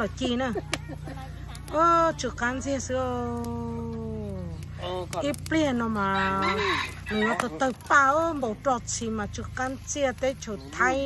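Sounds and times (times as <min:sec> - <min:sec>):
rooster crowing: 0:06.0 - 0:07.8.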